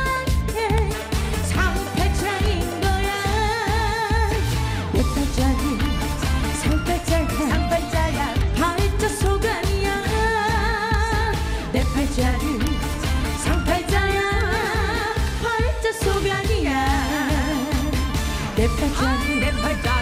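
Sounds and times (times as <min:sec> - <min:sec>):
musical accompaniment with beat: 0:00.0 - 0:20.0
woman singing into a microphone: 0:00.0 - 0:20.0.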